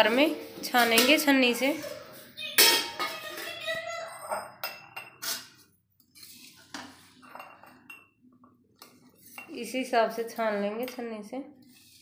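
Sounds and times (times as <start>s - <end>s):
spoon scraping metal pan: 0.0s - 8.0s.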